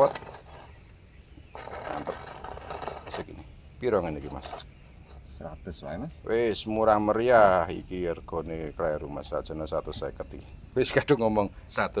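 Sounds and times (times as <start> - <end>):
pot scraping across stone: 0.0 - 5.4.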